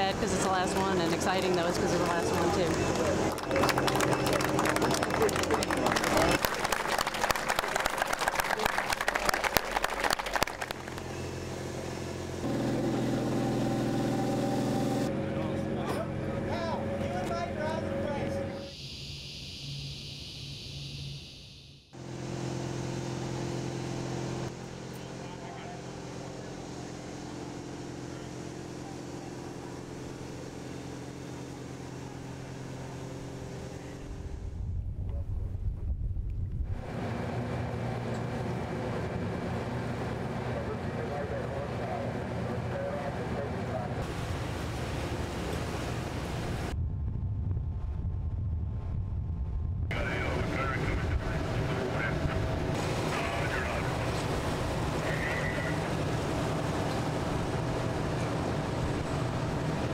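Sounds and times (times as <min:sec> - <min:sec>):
crowd voices: 0:00.0 - 0:10.6, 0:49.9 - 0:59.9
vehicle engines humming: 0:00.0 - 0:34.7, 0:36.6 - 0:46.8, 0:49.9 - 0:59.9.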